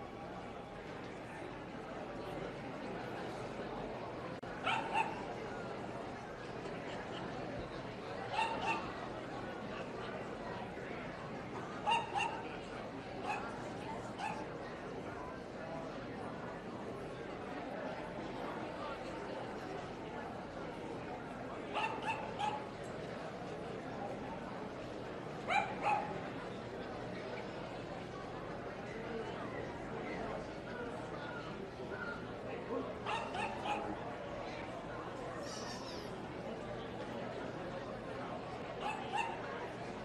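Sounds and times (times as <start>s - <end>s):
crowd chatter: 0.0s - 40.0s.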